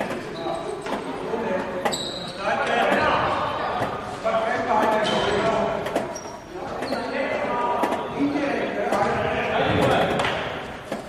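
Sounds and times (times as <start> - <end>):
shoe squeaks on floor: 0.2 - 1.1, 1.8 - 3.3, 4.9 - 7.4.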